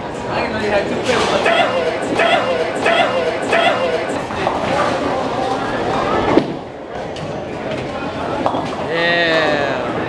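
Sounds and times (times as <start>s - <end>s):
voices and chatter: 0.0s - 10.0s
sharp knock: 1.5s - 4.6s.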